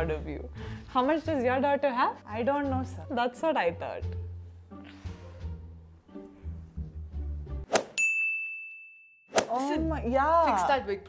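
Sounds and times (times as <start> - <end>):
background music: 0.0 - 8.0, 9.3 - 11.0
bright ding: 8.0 - 9.3.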